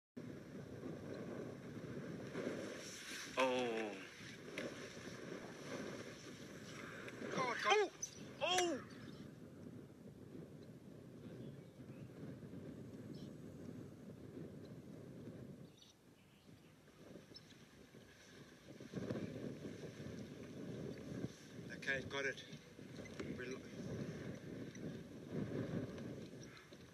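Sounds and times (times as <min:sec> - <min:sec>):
low rumble of wind: 0:00.2 - 0:26.9.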